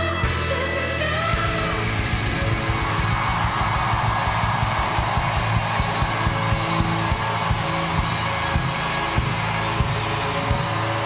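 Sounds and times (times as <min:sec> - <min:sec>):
rock band playing live: 0:00.0 - 0:11.0
crowd cheering: 0:01.3 - 0:11.0.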